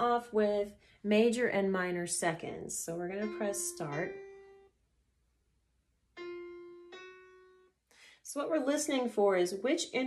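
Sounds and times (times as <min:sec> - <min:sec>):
piano interval notes: 0:01.2 - 0:04.8, 0:06.1 - 0:10.0.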